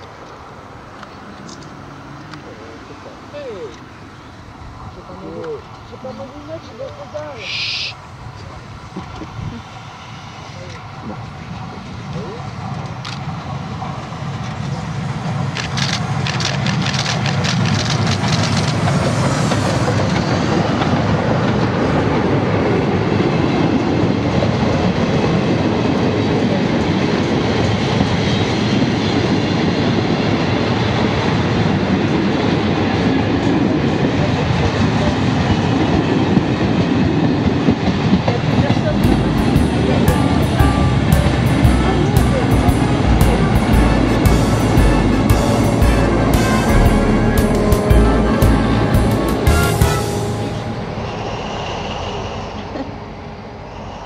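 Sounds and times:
diesel locomotive engine rumble: 0:00.0 - 0:54.0
steam locomotive passing: 0:00.0 - 0:54.0
train wheels on rails: 0:00.0 - 0:54.0.

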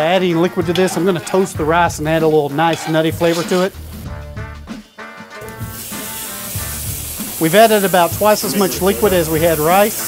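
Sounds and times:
background music: 0:00.0 - 0:10.0
liquid sizzling in hot pan: 0:05.4 - 0:10.0.

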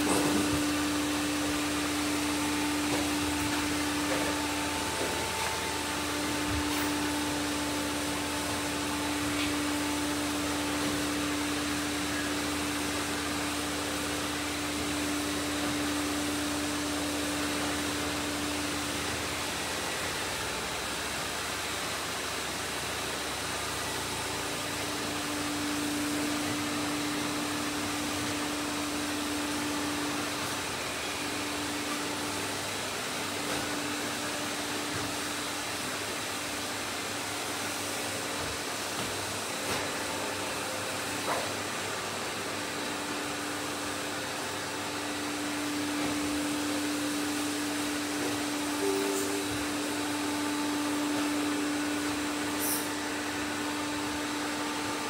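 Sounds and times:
humming tone: 0:48.1 - 0:53.0.

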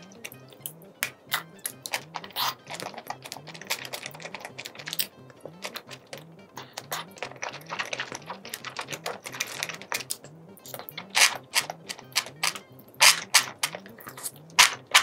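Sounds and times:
lip smacks and sucking: 0:00.0 - 0:15.0
loud bites: 0:00.0 - 0:15.0
wet chewing: 0:00.0 - 0:15.0.

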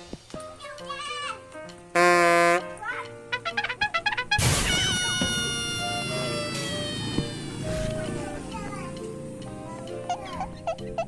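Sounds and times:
background music: 0:00.0 - 0:11.0
high tone sliding downward: 0:04.4 - 0:09.2.

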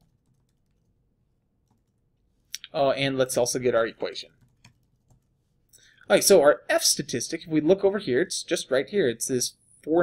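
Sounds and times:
faint keyboard typing: 0:00.0 - 0:02.8, 0:04.2 - 0:05.9.

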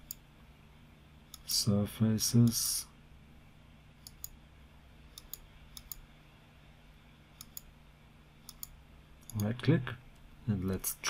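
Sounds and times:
computer mouse clicks: 0:00.0 - 0:00.2, 0:04.0 - 0:04.4, 0:05.1 - 0:06.1, 0:07.3 - 0:07.7, 0:08.4 - 0:09.5
faint low hum: 0:00.0 - 0:11.0.

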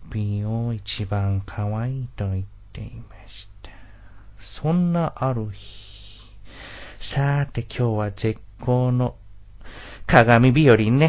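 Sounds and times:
faint steady hum: 0:00.0 - 0:11.0
person whispering: 0:02.8 - 0:03.8, 0:05.4 - 0:06.4.

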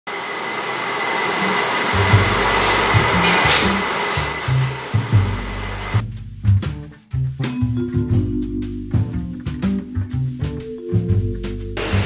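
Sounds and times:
pot hissing on stove: 0:00.1 - 0:06.0
background music with bass: 0:02.0 - 0:12.0.

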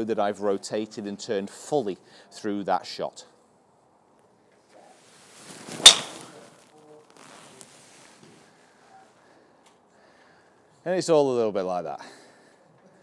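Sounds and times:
golf club swishing through air: 0:05.0 - 0:08.4
golf club striking ball: 0:05.8 - 0:06.4.

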